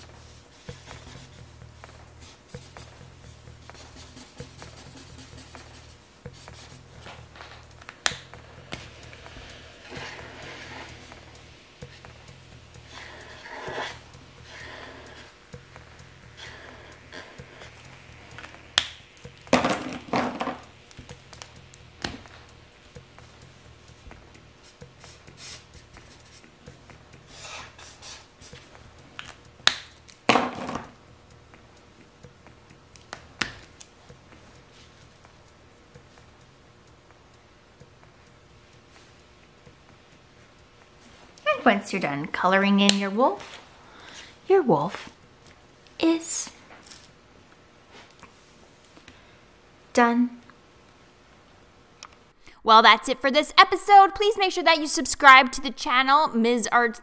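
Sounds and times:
low hum: 0:00.0 - 0:27.4
marker rubbing on paper: 0:00.1 - 0:07.6, 0:08.4 - 0:12.2, 0:12.8 - 0:15.4, 0:16.3 - 0:18.6, 0:24.6 - 0:26.6, 0:27.2 - 0:28.8.

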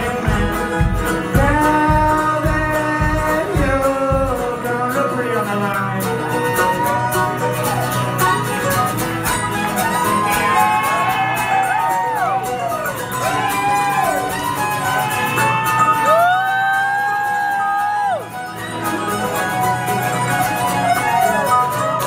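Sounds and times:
steady drum beat: 0:00.0 - 0:04.7
acoustic guitar: 0:00.0 - 0:22.0
banjo: 0:00.0 - 0:22.0
fiddle melody: 0:00.0 - 0:22.0.

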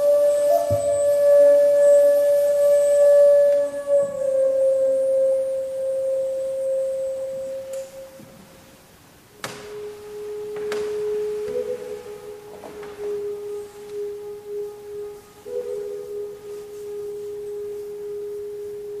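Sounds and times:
bamboo flute long notes: 0:00.0 - 0:19.0.

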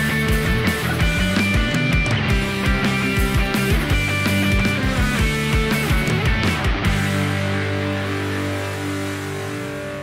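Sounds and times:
rock band sustained chord: 0:00.0 - 0:10.0.

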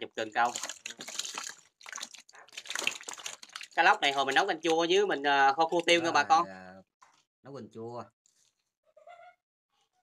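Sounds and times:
fish splashing in water: 0:00.4 - 0:04.7.

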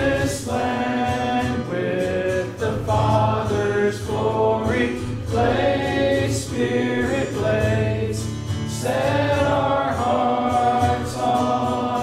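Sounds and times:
congregation singing a hymn: 0:00.0 - 0:12.0.

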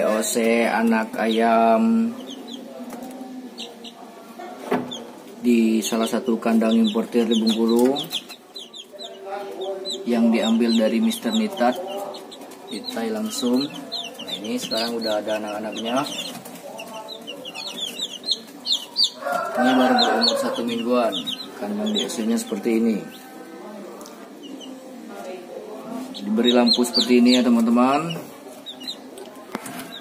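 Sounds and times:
chicks peeping: 0:00.0 - 0:30.0.

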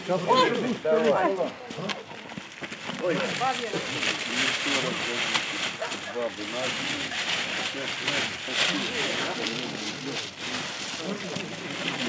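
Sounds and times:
people talking and exclaiming: 0:00.0 - 0:12.0.

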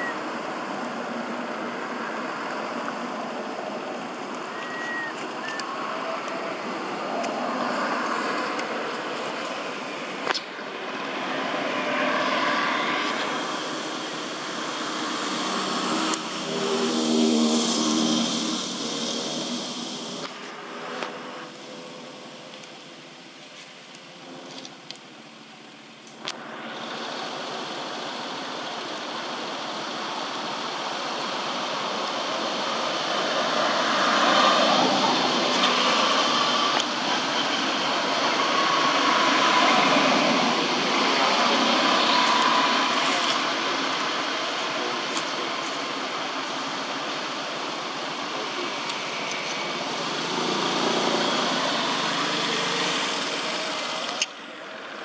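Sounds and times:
motor vehicles passing: 0:05.1 - 0:22.3, 0:26.4 - 0:55.0.

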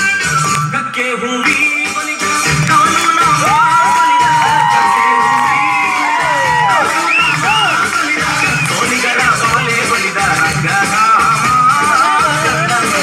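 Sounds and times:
dance music with drum beat: 0:01.4 - 0:13.0
children cheering and whooping: 0:03.4 - 0:07.9.

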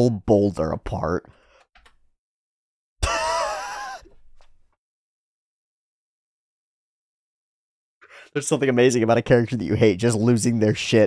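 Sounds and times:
cartoon voice crying out in pain: 0:03.0 - 0:04.1.

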